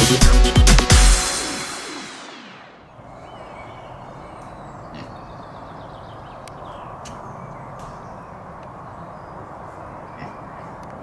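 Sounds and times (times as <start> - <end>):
music: 0.0 - 2.7.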